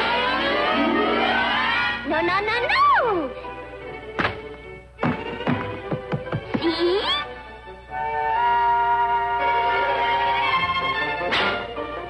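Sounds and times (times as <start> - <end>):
orchestral cartoon music: 0.0 - 12.0.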